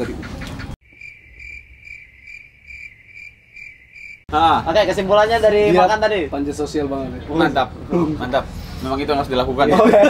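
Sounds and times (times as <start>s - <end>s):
cricket chirping: 0.8s - 4.3s.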